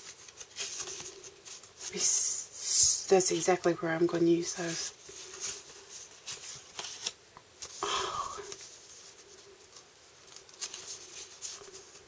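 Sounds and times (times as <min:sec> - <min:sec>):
paper tag rustling: 0:00.0 - 0:02.1, 0:04.4 - 0:07.8, 0:08.5 - 0:12.0.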